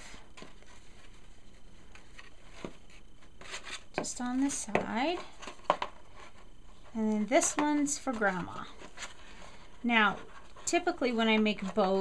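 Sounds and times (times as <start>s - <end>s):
ribbon and paper box rustling: 0.0s - 12.0s.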